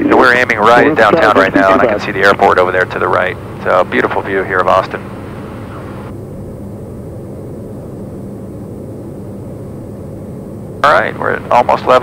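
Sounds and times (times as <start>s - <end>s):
turboprop engine drone: 0.0s - 12.0s.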